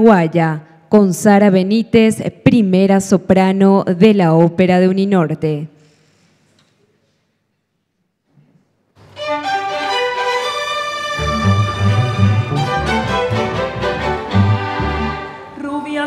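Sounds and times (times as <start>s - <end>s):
string orchestra playing: 9.1s - 15.6s
low cello and bass notes: 9.2s - 15.6s.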